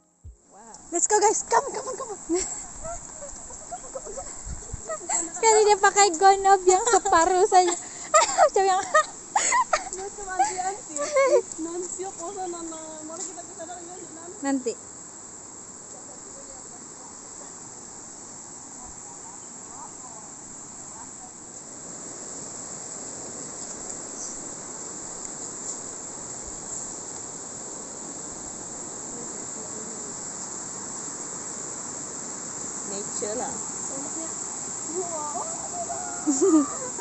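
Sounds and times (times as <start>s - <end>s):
high-pitched insect chorus: 0.0s - 37.0s
rocky river rushing: 0.9s - 14.4s, 16.2s - 37.0s.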